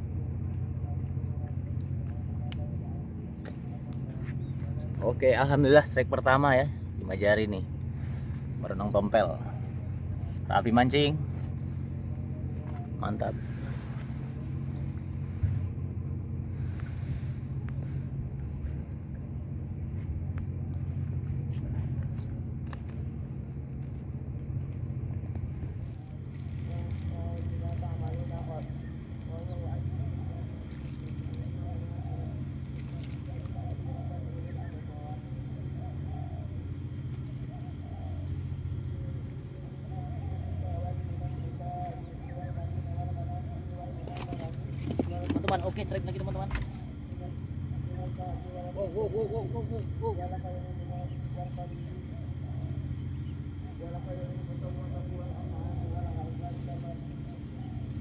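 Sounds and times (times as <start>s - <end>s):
engine droning hum: 0.0s - 58.0s.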